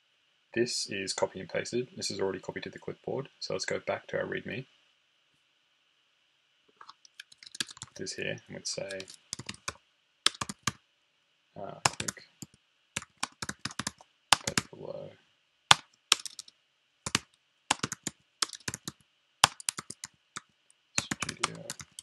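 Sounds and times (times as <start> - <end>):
computer keyboard typing: 7.2 - 8.0, 8.8 - 10.8, 11.9 - 14.7, 15.7 - 16.5, 17.1 - 22.0.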